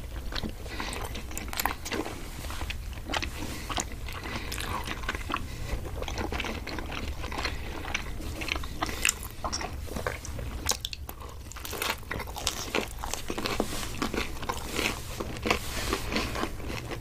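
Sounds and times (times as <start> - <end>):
people chewing pizza: 0.0 - 17.0.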